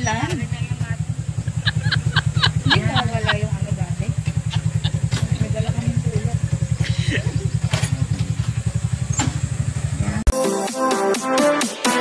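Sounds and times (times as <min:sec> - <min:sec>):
motorcycle engine idling: 0:00.0 - 0:10.3.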